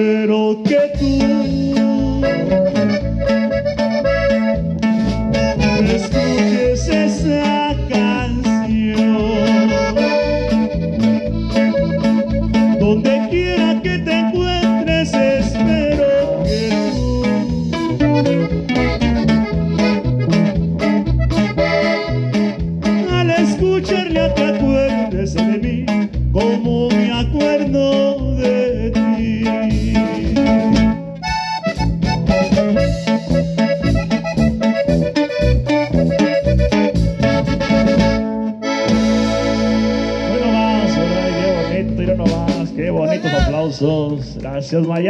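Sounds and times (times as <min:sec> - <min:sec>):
accordion melody: 0:00.0 - 0:44.8
band playing: 0:00.0 - 0:45.0
bass: 0:00.0 - 0:45.0
drums: 0:00.0 - 0:45.0
guitar: 0:00.0 - 0:45.0.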